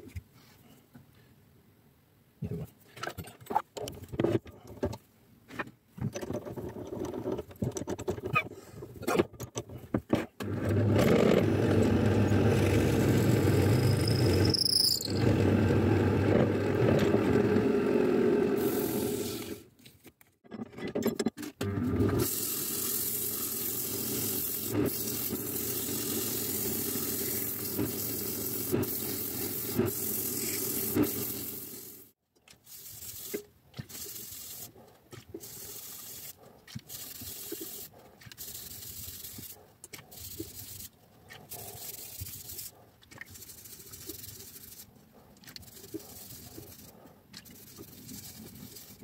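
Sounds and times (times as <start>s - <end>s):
short high squeal: 13.2s - 15.5s
sandpaper hissing on spinning wood: 22.2s - 31.9s, 35.4s - 39.6s, 43.3s - 44.9s, 45.6s - 46.9s, 47.5s - 49.0s.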